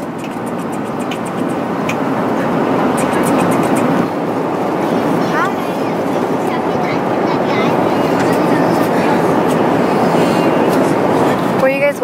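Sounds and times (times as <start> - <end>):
airliner engines and airflow hum: 0.0 - 12.0
person speaking: 0.0 - 12.0.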